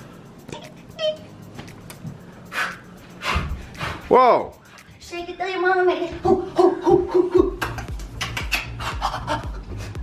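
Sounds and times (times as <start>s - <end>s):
woman panting: 2.4s - 4.0s.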